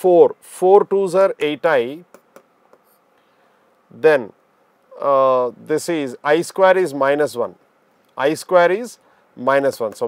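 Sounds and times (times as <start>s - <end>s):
stylus tapping and scratching: 1.4s - 3.0s, 9.8s - 10.0s.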